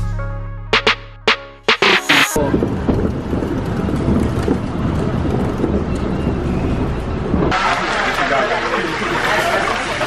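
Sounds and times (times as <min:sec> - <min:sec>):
wind buffeting microphone: 0:02.4 - 0:07.6.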